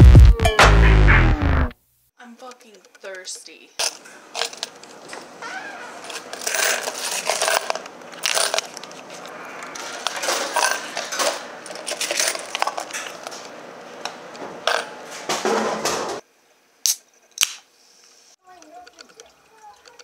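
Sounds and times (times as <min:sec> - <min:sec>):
coins dropping: 0:03.8 - 0:04.8, 0:05.9 - 0:13.4, 0:14.6 - 0:14.9
vending machine clattering: 0:03.8 - 0:13.6, 0:14.4 - 0:16.2.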